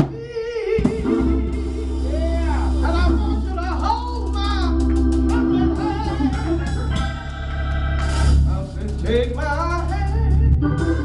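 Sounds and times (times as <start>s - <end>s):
organ sustained bass notes: 0.1s - 11.0s.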